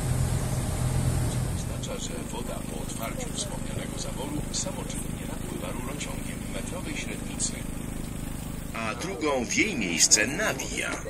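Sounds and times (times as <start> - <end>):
boat engine humming: 0.0 - 11.0
faint passenger voices: 1.3 - 11.0.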